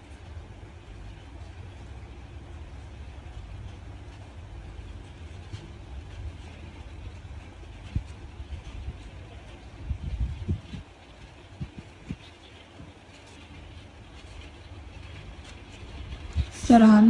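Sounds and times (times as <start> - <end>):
low background rumble: 0.0 - 17.0.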